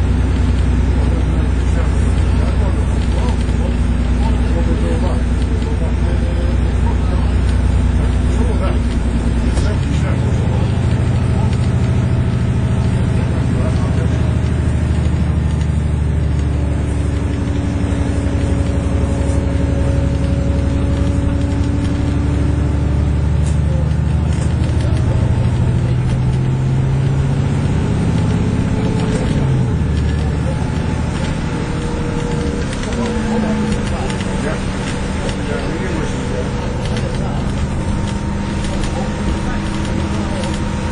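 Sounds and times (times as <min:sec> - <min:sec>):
bus diesel engine running: 0:00.0 - 0:40.9.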